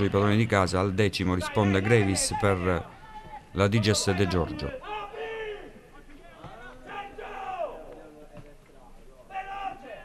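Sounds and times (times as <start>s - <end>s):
players shouting: 1.4s - 8.0s, 9.3s - 10.0s.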